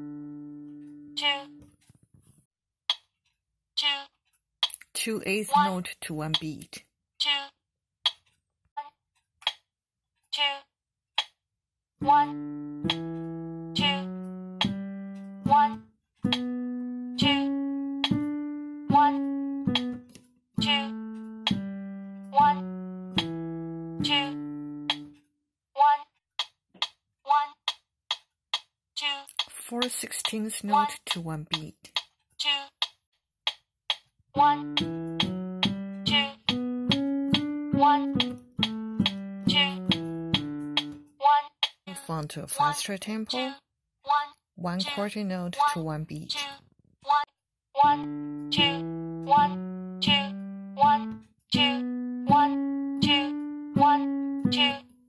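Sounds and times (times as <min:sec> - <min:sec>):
piano playing a slow scale: 0:00.0 - 0:01.6, 0:12.0 - 0:25.2, 0:34.4 - 0:41.2, 0:47.8 - 0:55.0
person speaking: 0:03.8 - 0:07.5, 0:13.8 - 0:14.8, 0:15.4 - 0:16.4, 0:17.2 - 0:18.2, 0:18.9 - 0:20.0, 0:20.6 - 0:21.7, 0:24.0 - 0:25.1, 0:29.0 - 0:32.7, 0:34.4 - 0:36.6, 0:37.4 - 0:54.8
metronome ticking: 0:04.6 - 0:06.7, 0:12.0 - 0:25.2, 0:26.4 - 0:32.9, 0:33.5 - 0:43.4, 0:47.8 - 0:54.9.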